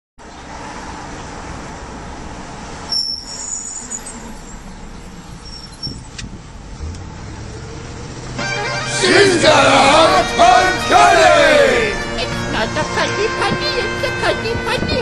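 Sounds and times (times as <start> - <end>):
car cabin road noise: 0.2 - 15.0
high-pitched squeak: 2.9 - 4.4, 5.4 - 6.1.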